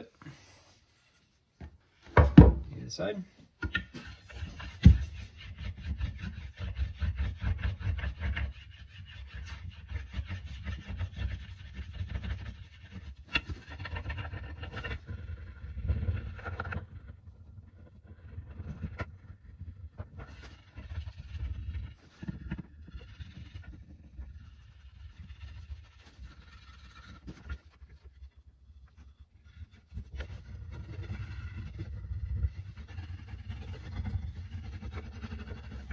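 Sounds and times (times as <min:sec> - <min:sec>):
rubbing strokes on wooden handle: 0:03.9 - 0:15.5, 0:20.2 - 0:35.9.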